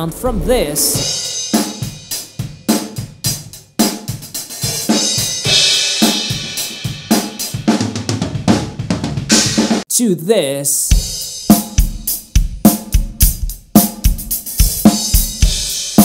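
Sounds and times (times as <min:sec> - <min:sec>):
drum kit groove: 0:00.0 - 0:09.9, 0:10.9 - 0:16.0.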